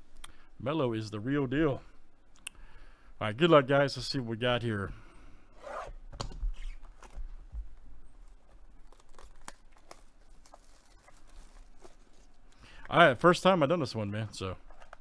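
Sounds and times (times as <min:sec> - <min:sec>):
hands tearing card box wrapping: 0:08.8 - 0:12.2.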